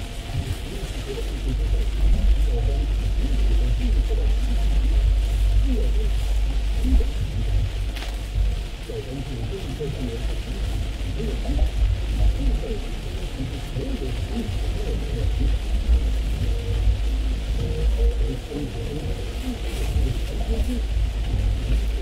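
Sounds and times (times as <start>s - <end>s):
low road rumble: 0.0s - 22.0s
rain and tyre spray hiss: 0.0s - 22.0s.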